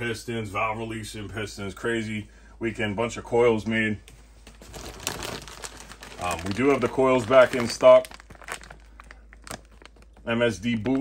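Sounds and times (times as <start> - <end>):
plastic bags crinkling: 4.4 - 11.0.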